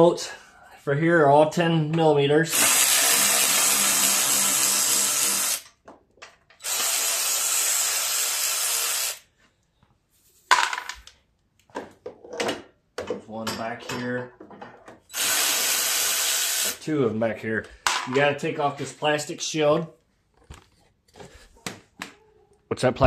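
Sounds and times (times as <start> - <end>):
cordless power tool running: 2.5 - 5.6
parts clicking and knocking: 5.6 - 6.6, 10.5 - 15.1.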